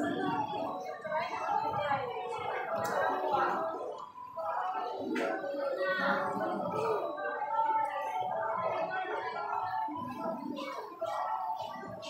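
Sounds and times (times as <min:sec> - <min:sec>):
indistinct background voices: 0:00.0 - 0:12.0.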